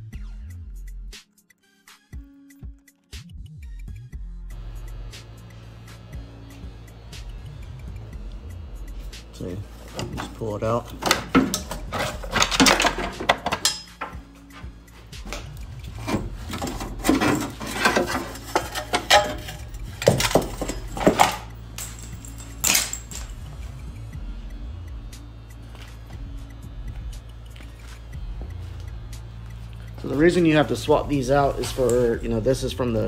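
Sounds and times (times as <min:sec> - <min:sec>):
music: 0:00.0 - 0:33.0
metal cables clinking and rattling: 0:09.8 - 0:23.5.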